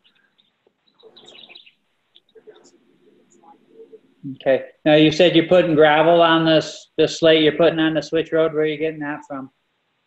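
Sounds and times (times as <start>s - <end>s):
faint bird chirps: 0.0s - 4.2s.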